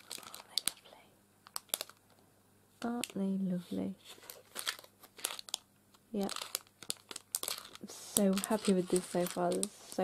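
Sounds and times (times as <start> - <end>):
light clicks of foil packet: 0.0 - 2.2, 4.1 - 5.6, 6.2 - 10.0.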